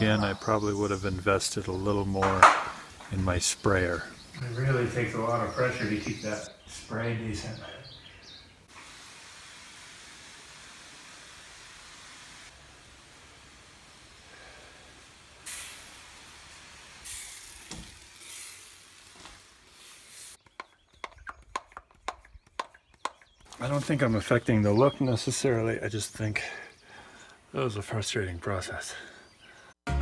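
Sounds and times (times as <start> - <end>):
pump sprayer hissing: 8.7 - 20.4.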